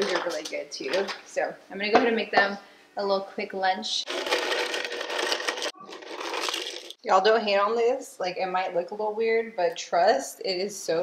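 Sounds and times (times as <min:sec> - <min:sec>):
crackers rattling in plastic tub: 0:04.1 - 0:07.0.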